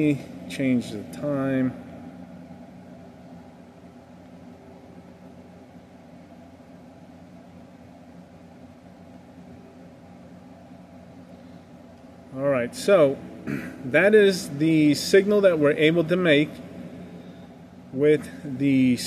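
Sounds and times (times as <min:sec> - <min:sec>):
machinery hum with faint hiss: 0:00.0 - 0:19.0.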